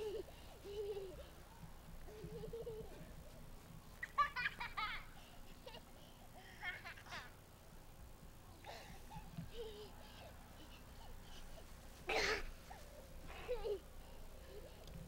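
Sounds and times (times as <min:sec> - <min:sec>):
young child laughing: 0:00.0 - 0:01.4, 0:02.0 - 0:03.4, 0:04.0 - 0:07.4, 0:08.6 - 0:14.9.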